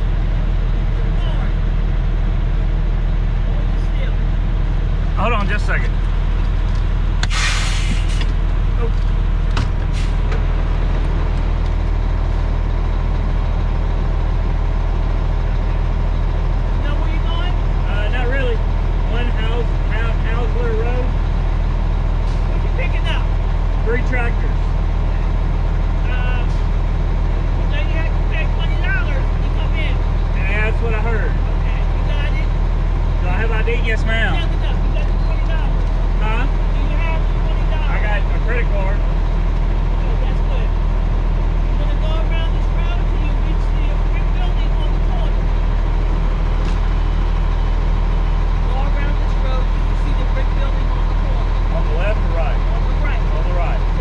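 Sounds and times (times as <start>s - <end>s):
diesel truck engine idling: 0.0s - 54.0s
people talking in low voices: 15.5s - 54.0s.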